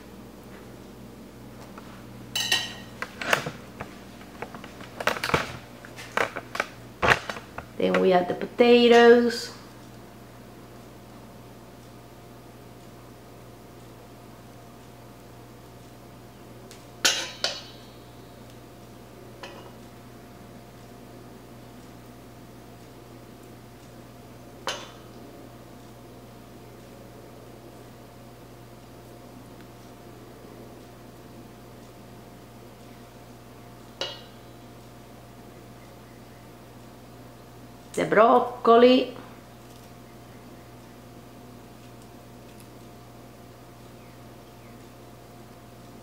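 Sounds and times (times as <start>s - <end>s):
steady low hum: 0.0s - 46.0s
knife clinking in metal bowl: 2.4s - 2.9s.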